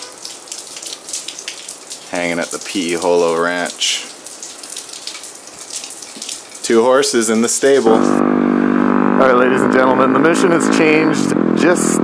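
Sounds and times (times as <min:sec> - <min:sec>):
rain hissing: 0:00.0 - 0:08.2
raindrops pattering: 0:00.0 - 0:08.2.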